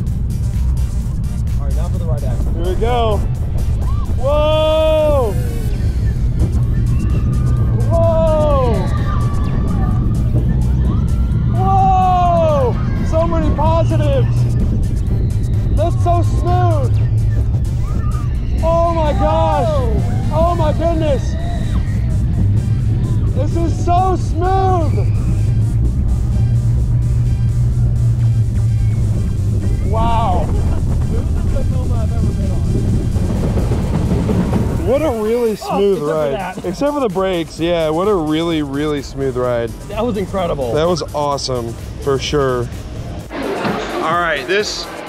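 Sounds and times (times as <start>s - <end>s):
roller coaster rumble: 0.0s - 45.0s
riders whooping: 3.0s - 26.6s, 28.6s - 37.0s.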